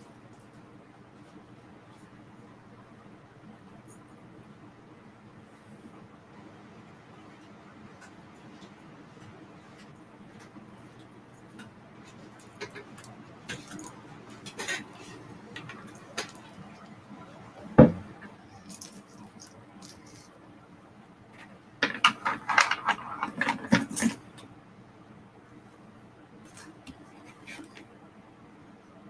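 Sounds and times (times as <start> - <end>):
faint steady hum: 0.0 - 29.0
small hard objects clicking: 18.6 - 20.3.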